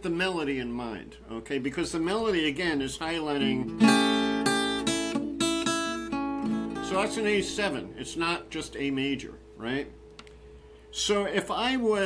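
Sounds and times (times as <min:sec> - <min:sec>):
acoustic guitar strumming: 0:03.4 - 0:08.5.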